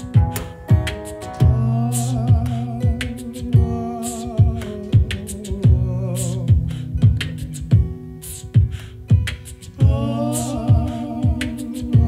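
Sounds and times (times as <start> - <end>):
low thump on beat: 0.0 - 12.0
strummed acoustic guitar: 0.0 - 12.0.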